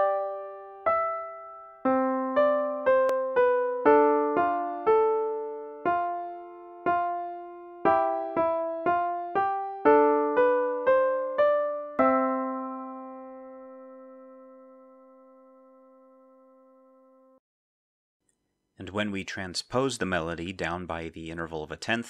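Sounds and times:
piano playing two voices: 0:00.0 - 0:17.4.

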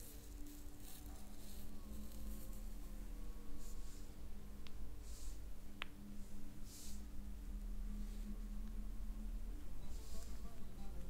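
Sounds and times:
fingertips rubbing through hair: 0:00.0 - 0:02.9
relaxing drone music: 0:00.0 - 0:11.0.

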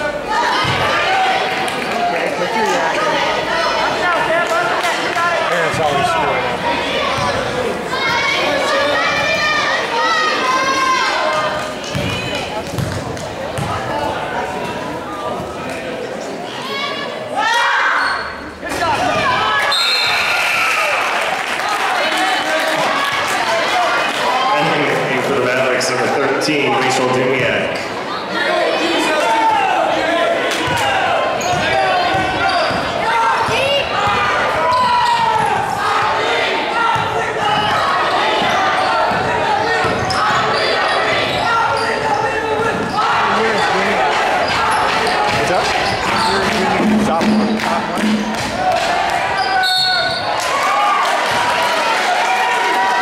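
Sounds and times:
echoing voices in a hall: 0:00.0 - 0:53.0
basketball bouncing on hardwood floor: 0:11.9 - 0:13.0.

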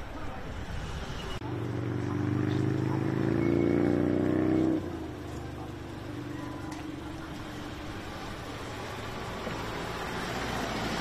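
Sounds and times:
car engine accelerating: 0:01.4 - 0:11.0.

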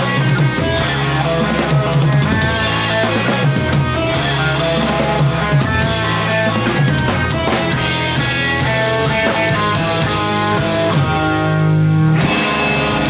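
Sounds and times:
bass guitar: 0:00.0 - 0:13.0
distorted electric guitars: 0:00.0 - 0:13.0
drum kit: 0:00.0 - 0:13.0.

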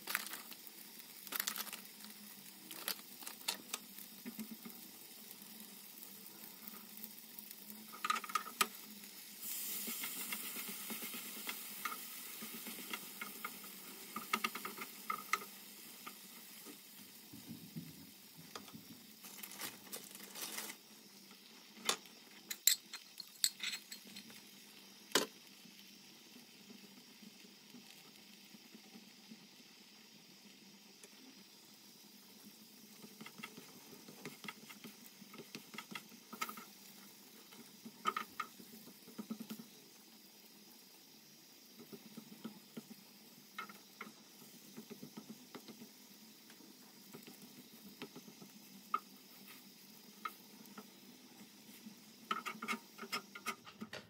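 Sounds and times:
tortilla sizzling on grill pan: 0:00.0 - 0:53.9.

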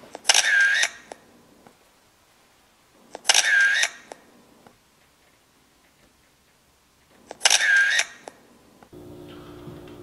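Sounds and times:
camera shutter click and whirr: 0:00.1 - 0:01.2, 0:03.1 - 0:04.3, 0:07.2 - 0:08.4.

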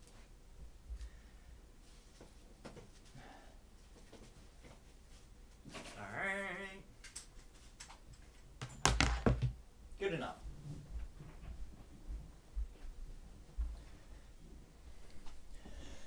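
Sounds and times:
sharp knocks and thumps: 0:08.6 - 0:09.6.

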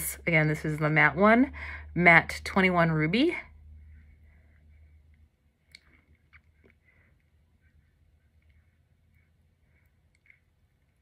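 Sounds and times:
faint mouth and lip sounds: 0:04.8 - 0:11.0.

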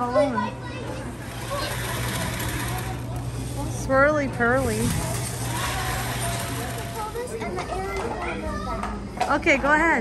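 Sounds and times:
blower fan rushing air: 0:00.0 - 0:10.0
faint voices: 0:00.0 - 0:10.0.

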